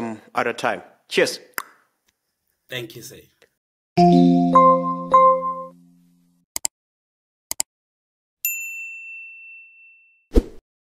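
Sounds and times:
high notification bell ding: 4.0s - 5.8s.

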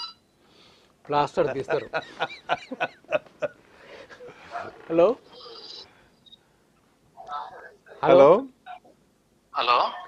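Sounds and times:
man laughing: 1.4s - 3.6s
man speaking: 7.5s - 8.8s.

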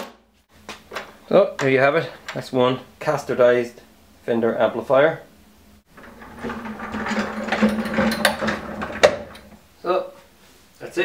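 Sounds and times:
castors rolling across tiled floor: 5.8s - 9.6s.

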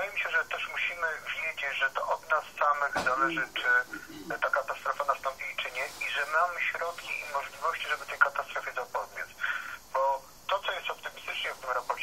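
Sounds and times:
person talking over telephone: 0.0s - 12.0s.

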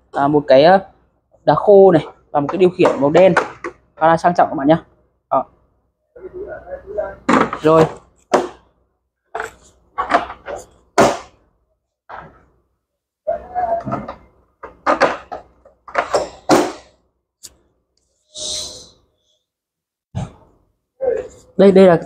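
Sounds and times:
low speech: 6.2s - 7.9s
hard plastic knocks and clunks: 9.4s - 11.3s, 13.8s - 16.7s.

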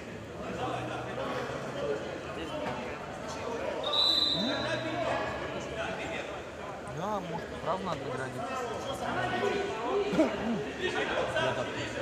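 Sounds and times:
whistle blast: 3.8s - 4.8s.

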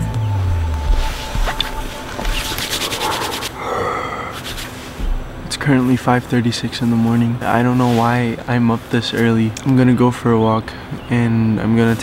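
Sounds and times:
music track: 0.0s - 3.6s
jacket fabric rustling: 0.9s - 9.4s.

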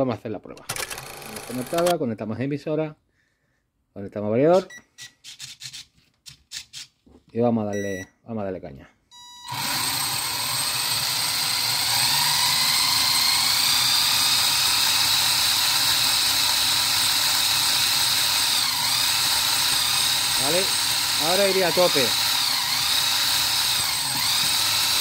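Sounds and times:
short beep: 7.7s - 8.1s, 9.1s - 9.6s
electric motor high whine: 9.2s - 25.0s.

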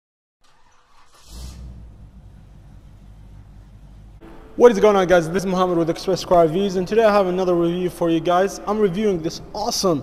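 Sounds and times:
low car engine rumble: 0.4s - 4.9s.

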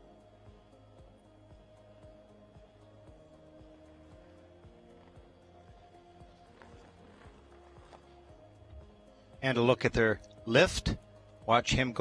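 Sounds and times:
faint music with held notes: 0.0s - 12.0s.

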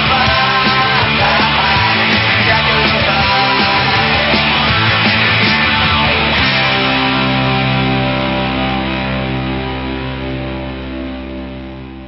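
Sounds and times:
rock band final hits: 0.0s - 10.6s
guitar chord ringing out: 6.2s - 12.0s.

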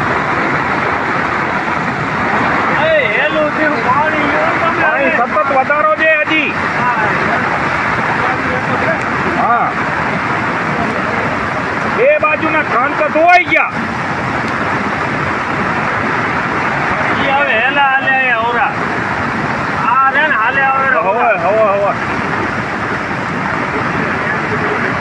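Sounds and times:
floodwater rushing: 0.0s - 25.0s
voices calling out: 2.5s - 13.8s.

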